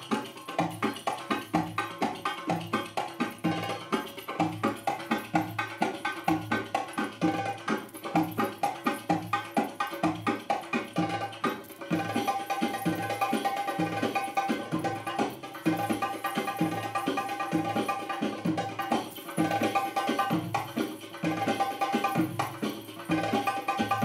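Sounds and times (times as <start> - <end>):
hand drums playing rhythm: 0.0 - 24.0.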